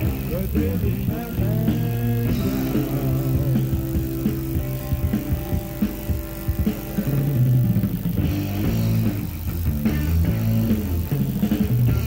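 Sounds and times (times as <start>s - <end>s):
bass guitar: 0.0s - 12.0s
drum hits: 0.0s - 12.0s
electric guitar: 0.0s - 12.0s.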